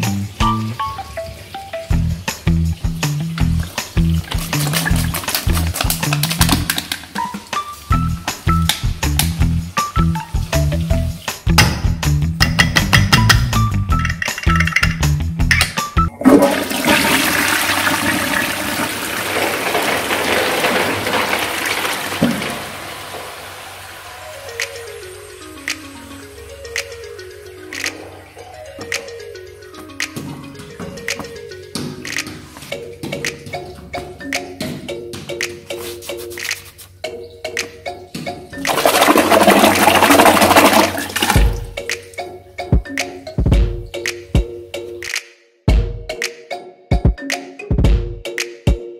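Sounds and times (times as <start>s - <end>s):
toilet flushing: 0.0s - 8.6s, 16.1s - 28.5s, 38.6s - 41.8s.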